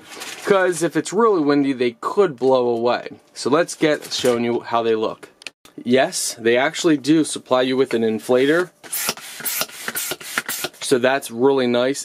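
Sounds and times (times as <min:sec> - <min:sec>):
hand air pump rubbing and scraping: 0:08.3 - 0:10.9.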